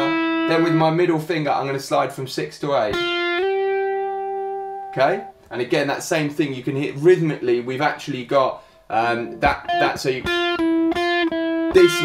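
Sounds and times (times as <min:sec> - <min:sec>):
electric guitar note sliding: 0:03.1 - 0:05.4.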